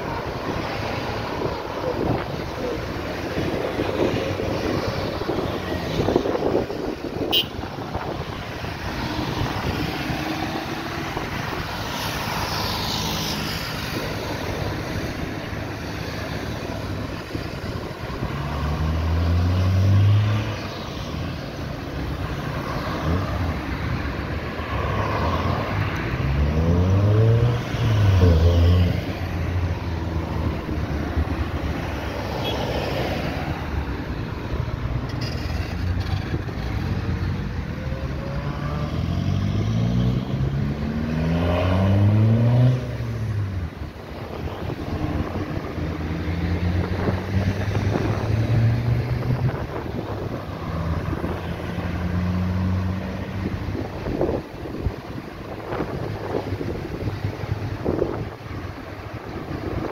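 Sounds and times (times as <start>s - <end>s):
cars passing: 0.0s - 59.9s
rush of tyres and engines: 0.0s - 59.9s.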